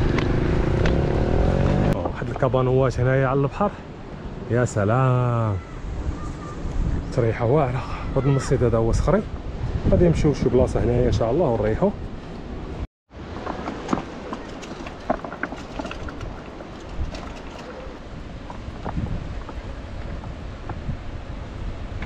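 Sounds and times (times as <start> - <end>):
wind buffeting microphone: 0.0 - 22.0
sea surf on rocky shore: 13.2 - 22.0.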